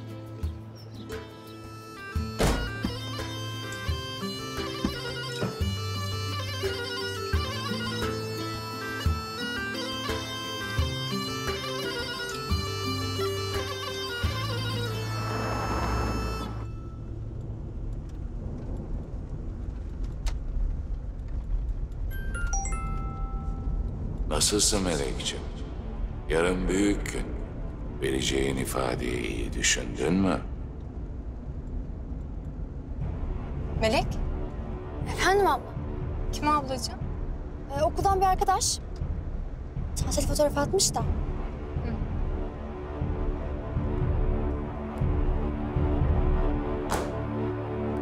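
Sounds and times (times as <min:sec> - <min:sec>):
bagpipe-like wind melody: 0:01.5 - 0:17.0
percussion hits: 0:02.1 - 0:05.9, 0:43.0 - 0:47.4
low steady rumble: 0:15.4 - 0:46.8.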